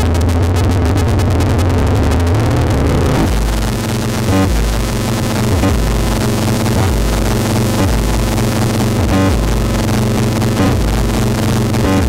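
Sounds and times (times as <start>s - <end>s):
distorted synthesizer sequence: 0.0s - 12.0s
low distorted drone: 0.0s - 12.0s.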